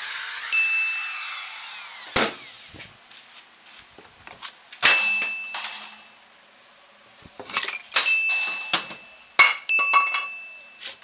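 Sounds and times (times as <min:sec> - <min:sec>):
metal object clanging: 0:04.8 - 0:06.2, 0:07.5 - 0:10.4.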